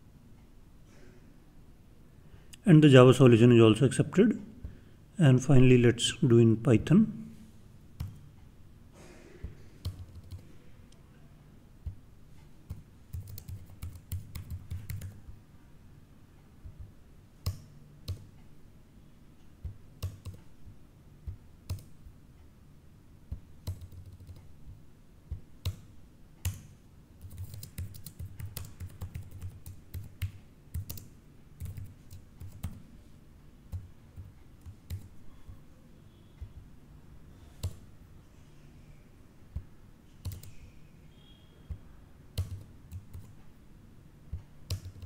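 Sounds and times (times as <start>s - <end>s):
keyboard and mouse clicks: 8.0s - 8.3s, 9.8s - 11.0s, 11.8s - 15.4s, 16.6s - 18.4s, 19.6s - 20.6s, 21.3s - 22.0s, 23.3s - 24.5s, 25.3s - 32.8s, 33.7s - 35.7s, 37.5s - 37.9s, 39.5s - 40.7s, 41.7s - 43.4s, 44.3s - 45.0s.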